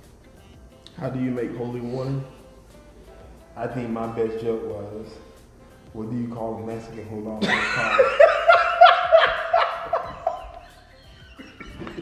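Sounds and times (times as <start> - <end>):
men laughing hard: 7.4 - 12.0.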